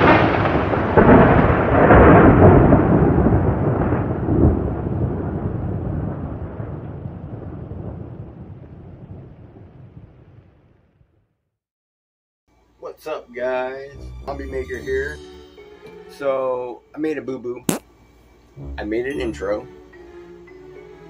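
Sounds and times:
thunder rumbling: 0.0 - 10.1.

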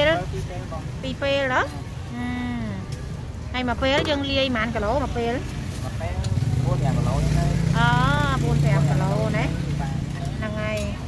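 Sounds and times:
people talking: 6.7 - 9.6.

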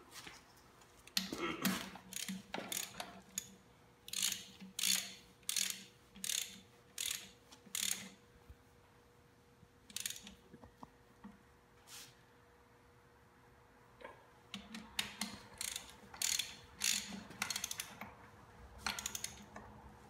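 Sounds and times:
ratchet wrench clicking: 2.1 - 8.2, 9.9 - 10.4, 15.0 - 18.0, 18.8 - 19.6.

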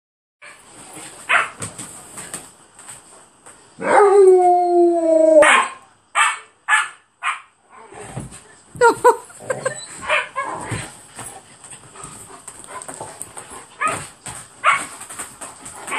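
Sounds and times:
dogs scuffling: 0.4 - 3.8, 8.0 - 15.9.

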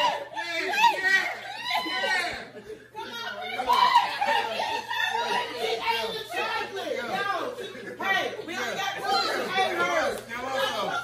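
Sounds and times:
group chatter: 0.0 - 11.0.

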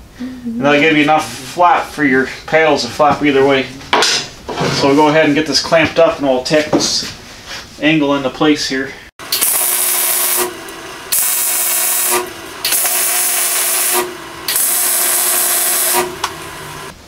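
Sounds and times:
arc welder crackling hiss: 9.2 - 17.0.

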